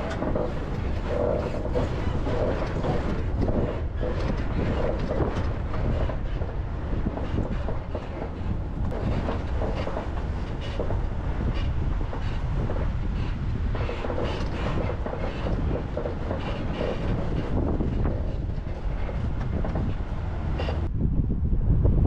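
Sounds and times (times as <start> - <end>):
rattles and knocks: 0.0 - 20.9
vehicle road noise rumble: 0.0 - 22.0.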